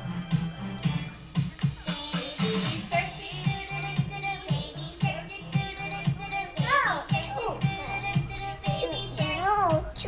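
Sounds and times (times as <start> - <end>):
child singing over a beat: 1.4 - 10.0.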